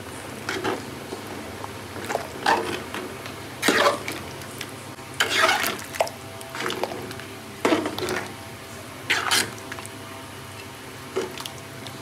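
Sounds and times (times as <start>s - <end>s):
metal ladle scraping pot: 3.6s - 4.2s, 5.2s - 5.8s, 9.1s - 9.6s.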